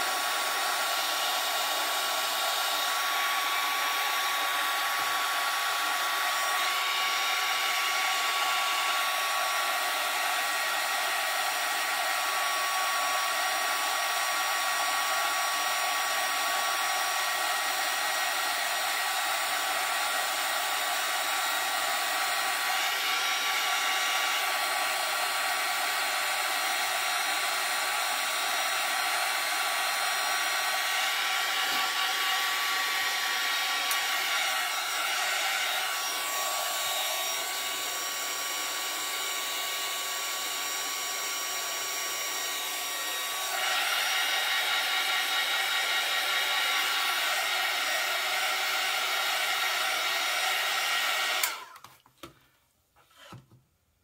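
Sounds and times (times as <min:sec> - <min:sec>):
hair dryer blowing: 0:00.0 - 0:52.4.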